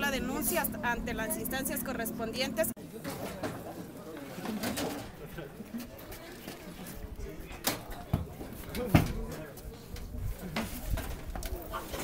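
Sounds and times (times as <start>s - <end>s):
faint indistinct voices: 0.0s - 12.0s.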